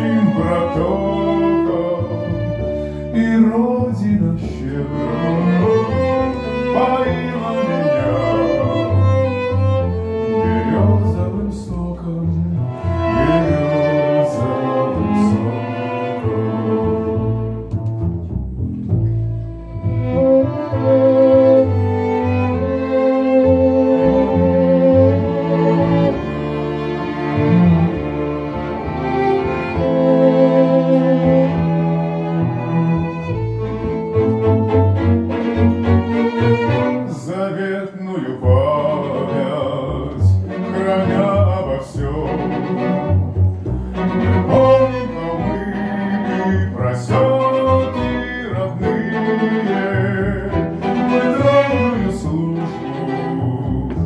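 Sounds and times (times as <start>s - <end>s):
held low bass notes: 0.0s - 54.0s
string ensemble playing: 0.0s - 54.0s.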